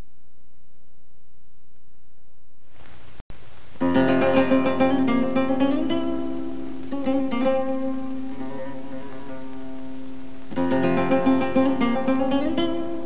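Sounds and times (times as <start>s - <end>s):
flamenco guitar playing: 3.6s - 13.0s.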